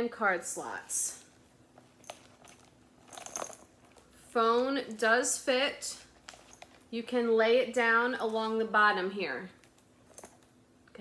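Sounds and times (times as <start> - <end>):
phone scraping and rustling in bag: 6.0 - 6.9.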